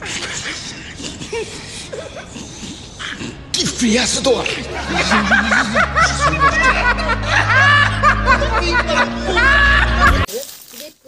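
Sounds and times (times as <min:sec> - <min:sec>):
person laughing: 0:04.7 - 0:10.3.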